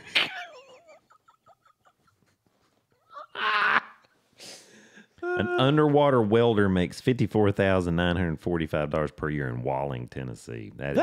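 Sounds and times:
man laughing: 3.0 - 4.0, 5.2 - 5.8.

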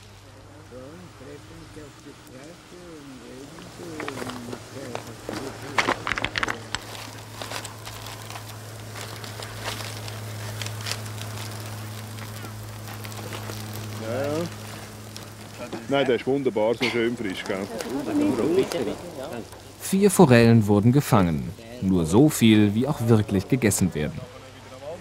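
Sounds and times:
steady low hum: 0.0 - 25.0
aluminium foil crinkling: 2.3 - 24.3
sharp clicks and rattles: 3.6 - 18.0.

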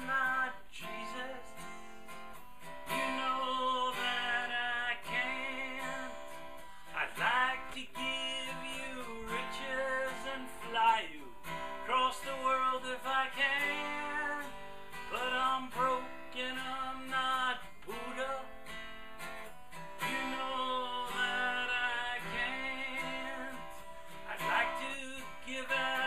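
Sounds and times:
man singing: 0.0 - 18.8, 20.0 - 26.0
acoustic guitar strumming: 0.0 - 26.0.

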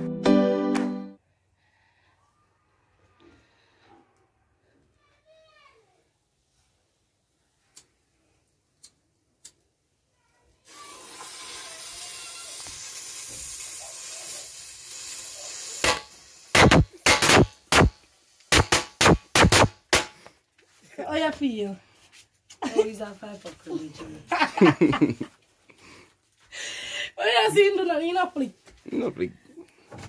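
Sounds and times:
fuse hissing: 10.6 - 19.6
firecracker bangs: 15.8 - 20.2.

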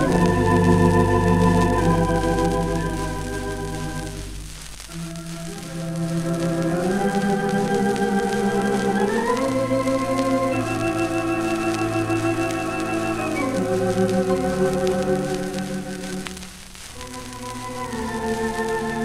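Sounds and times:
record surface crackle: 0.0 - 19.0.

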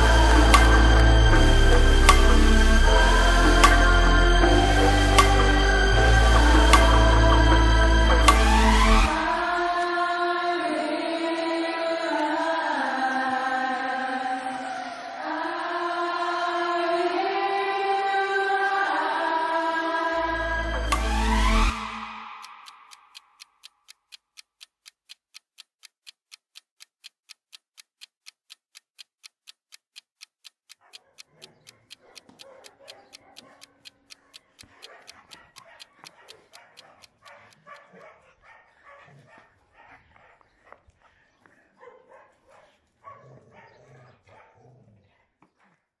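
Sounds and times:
steady ticking: 0.0 - 9.5, 20.3 - 38.1
many dogs barking and yelping: 14.0 - 15.6, 30.8 - 45.9.

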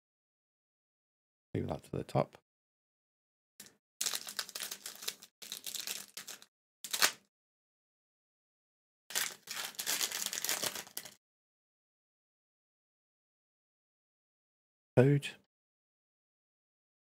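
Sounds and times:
foil wrapper tearing and crinkling: 4.0 - 7.2, 9.1 - 11.2.

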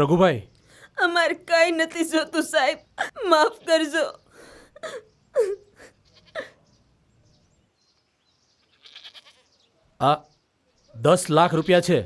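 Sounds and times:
sheep bleating: 6.0 - 6.6, 8.5 - 9.6.

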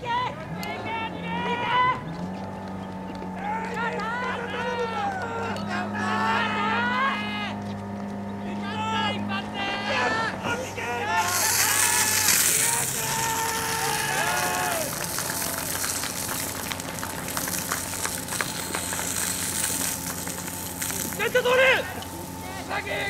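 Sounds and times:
voices calling out: 0.0 - 23.0
fire pump engine drone: 2.1 - 23.0
fire hose jetting water: 10.7 - 23.0.

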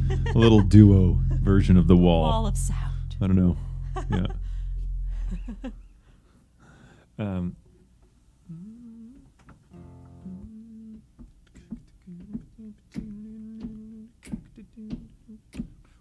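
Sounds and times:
acoustic guitar plucks: 0.0 - 6.0, 9.7 - 15.2
soft humming: 0.0 - 6.3, 8.4 - 16.0.

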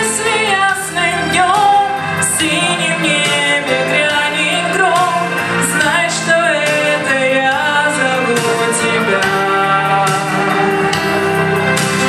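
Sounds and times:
woman singing pop song: 0.0 - 11.2
backing track with guitar: 0.0 - 12.0.

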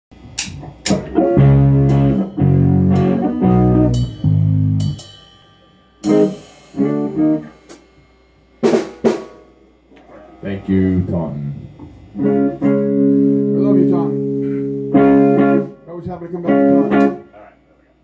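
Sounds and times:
guitar chords: 0.2 - 8.0, 8.6 - 17.5
drum and cymbal hits: 0.2 - 9.9.

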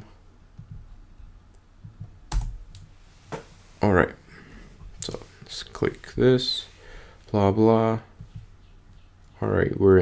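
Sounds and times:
computer keyboard clicks: 2.0 - 2.9.

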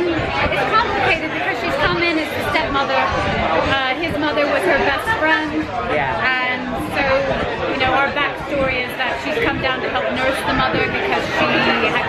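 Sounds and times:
woman talking: 0.0 - 3.1, 3.7 - 12.0
crowd chatter: 0.0 - 12.0.

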